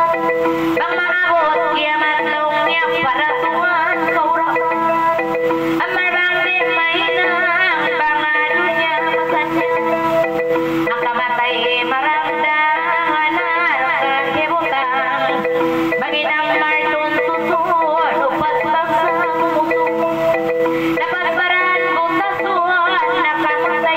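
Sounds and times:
electronic keyboard accompaniment: 0.0s - 23.9s
woman singing ornamented melody: 0.0s - 23.9s.

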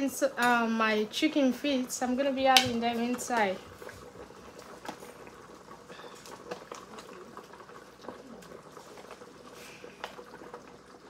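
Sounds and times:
pot boiling with faint bubbling: 0.0s - 11.0s.

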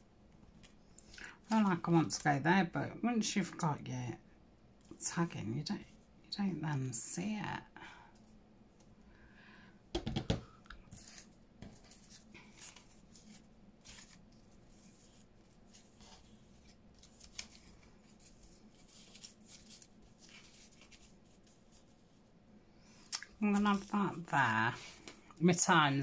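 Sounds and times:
paper rustling: 10.8s - 22.2s, 23.4s - 26.0s.

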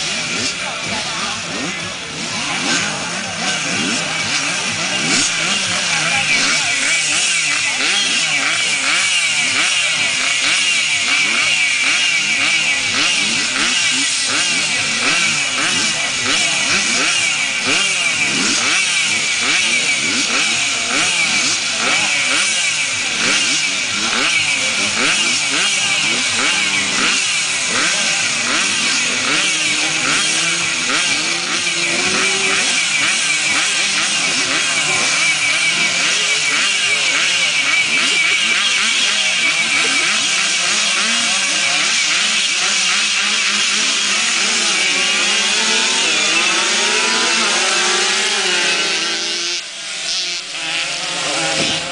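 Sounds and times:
motorcycle engines revving: 0.0s - 51.9s.

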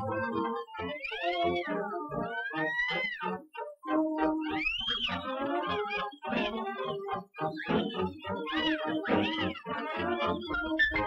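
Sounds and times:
orchestral cartoon music: 0.0s - 11.0s
meow-like cries: 0.4s - 3.4s, 7.6s - 11.0s.

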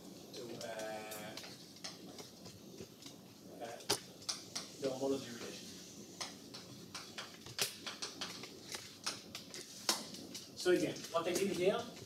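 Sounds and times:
chalk tapping on blackboard: 4.2s - 10.1s.

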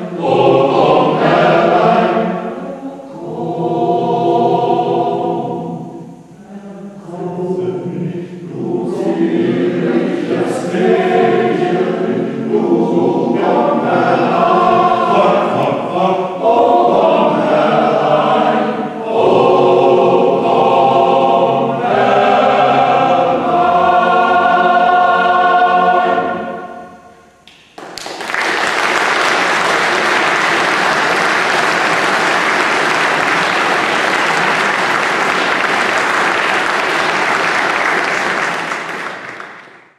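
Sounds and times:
mixed choir singing: 0.0s - 27.4s, 28.4s - 39.5s
audience applause: 27.8s - 39.9s.

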